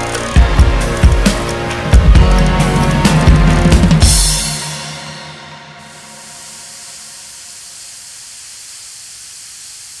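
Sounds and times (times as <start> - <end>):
steady static hiss: 5.9 - 10.0.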